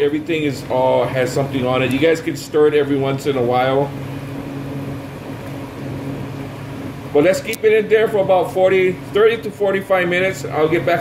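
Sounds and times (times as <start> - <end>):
ventilation fan humming: 0.0 - 11.0.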